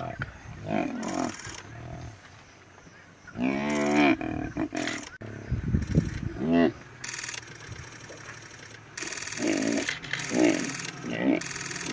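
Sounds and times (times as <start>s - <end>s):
hippo calf bellowing: 0.0s - 2.2s, 3.3s - 5.2s, 8.0s - 11.9s.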